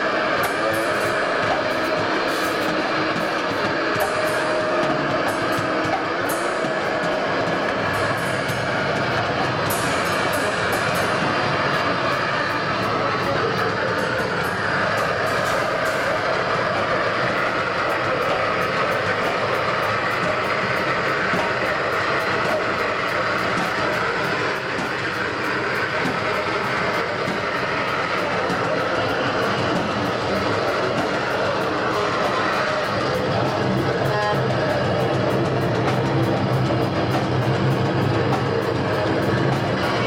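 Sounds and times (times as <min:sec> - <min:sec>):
distorted electric guitar: 0:00.0 - 0:40.0
drum kit steady beat: 0:00.0 - 0:40.0.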